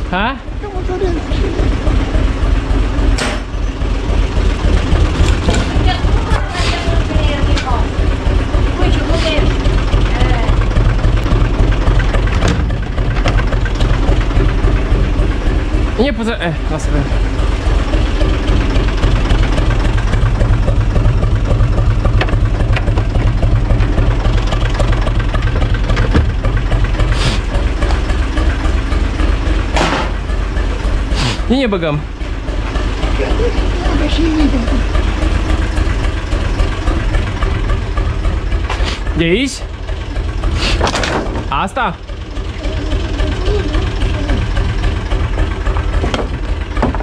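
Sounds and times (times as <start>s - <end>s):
tractor diesel engine running: 0.0s - 47.0s.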